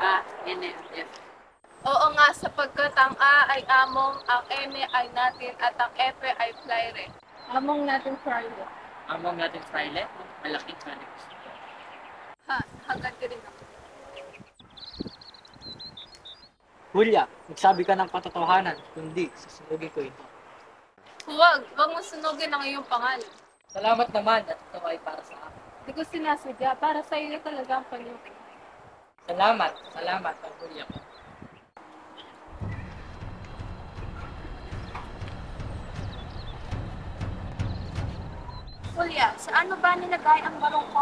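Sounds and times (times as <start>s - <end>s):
small bird chirping: 14.1s - 16.6s, 29.6s - 39.3s
horse hooves clip-clopping: 32.5s - 39.2s.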